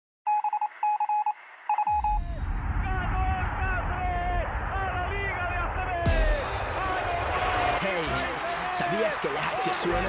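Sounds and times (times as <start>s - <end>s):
rapid electronic beeps: 0.3s - 2.3s
steady low rumble: 1.9s - 7.6s
deep falling sweep: 1.9s - 7.8s.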